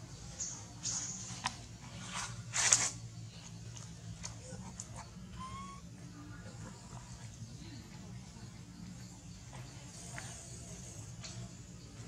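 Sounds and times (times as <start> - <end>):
low steady hum: 0.0 - 12.0
faint short squeak: 5.4 - 5.8.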